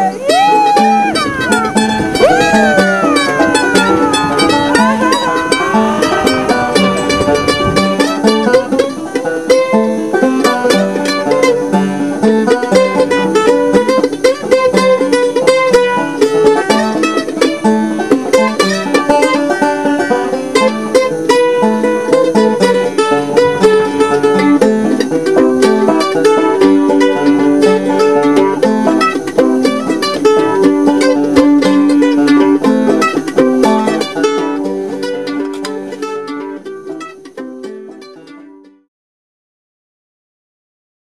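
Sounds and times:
banjo picking: 0.0 - 38.9.

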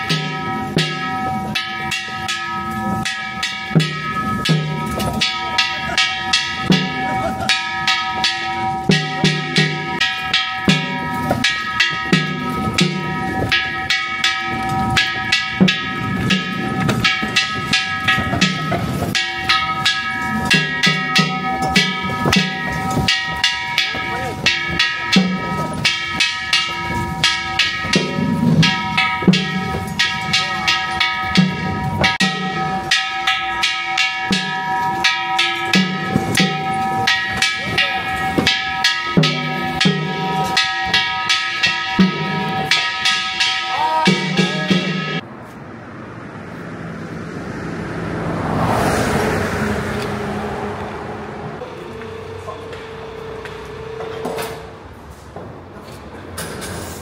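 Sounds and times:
ringing metal percussion strikes: 0.0 - 45.3, 50.0 - 55.0.

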